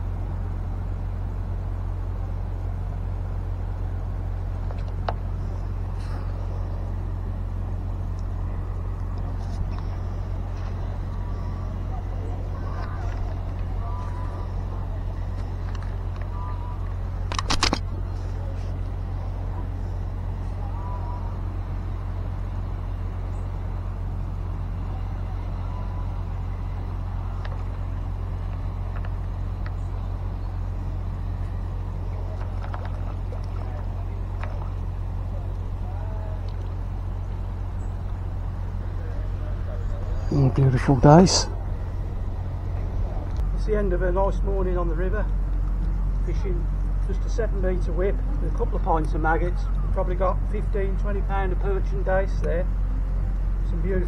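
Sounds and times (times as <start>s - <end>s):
low outdoor rumble: 0.0s - 54.0s.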